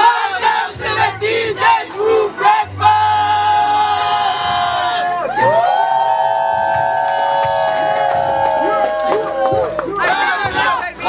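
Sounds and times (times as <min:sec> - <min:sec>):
group singing in harmony: 0:00.0 - 0:05.2.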